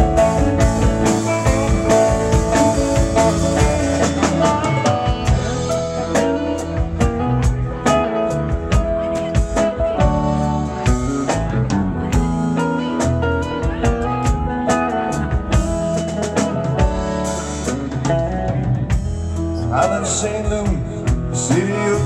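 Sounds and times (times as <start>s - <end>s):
bass: 0.0s - 22.0s
drums: 0.0s - 22.0s
electric guitar: 0.0s - 22.0s.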